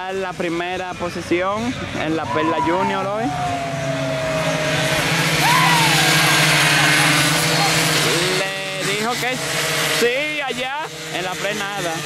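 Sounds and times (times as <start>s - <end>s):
mini-motorcycle engines revving: 0.0s - 12.0s.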